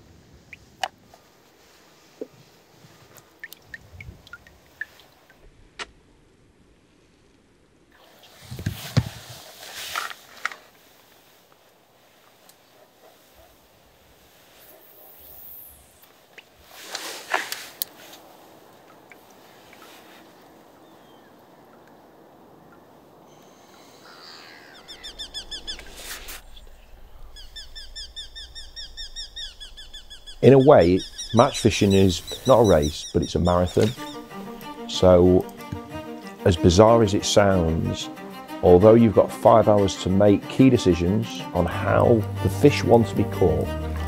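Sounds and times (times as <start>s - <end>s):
bird chirping rapidly: 23.3s - 34.8s.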